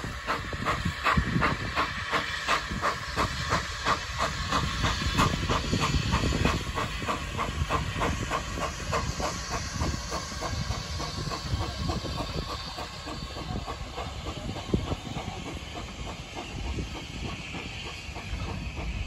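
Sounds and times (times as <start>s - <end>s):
carriages rumbling on track: 0.0s - 19.0s
steam locomotive chuffing: 0.0s - 19.0s.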